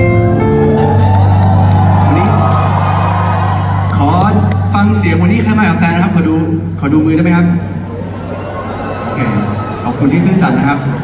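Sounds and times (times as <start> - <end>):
audience cheering and whooping: 0.3 - 6.0, 7.8 - 11.0.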